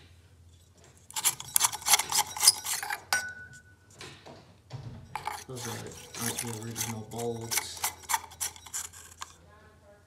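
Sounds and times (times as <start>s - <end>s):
fingers scraping glass shade: 1.1s - 3.1s, 5.2s - 9.4s.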